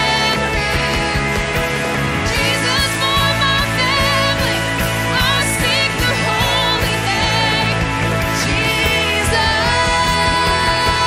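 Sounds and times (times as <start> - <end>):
acoustic guitar: 0.0 - 11.0
drums steady beat: 0.0 - 11.0
electric bass: 0.0 - 11.0
keyboard chords: 0.0 - 11.0.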